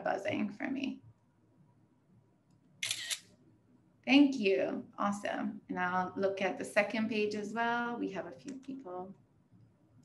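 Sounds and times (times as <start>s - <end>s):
camera shutter click: 2.8s - 3.3s.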